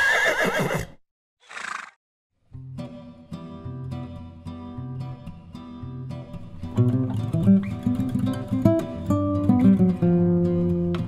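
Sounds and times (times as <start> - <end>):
horse whinnying: 0.0 - 2.0.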